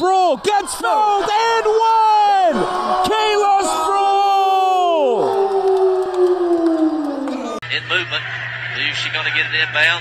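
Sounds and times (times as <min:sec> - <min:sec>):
commentator shouting: 0:00.0 - 0:05.4
crowd cheering: 0:00.0 - 0:10.0.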